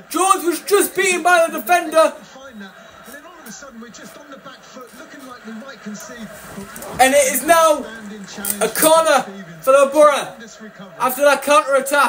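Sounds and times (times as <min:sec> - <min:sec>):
football commentary in background: 0:00.0 - 0:12.0
man talking: 0:00.0 - 0:12.0.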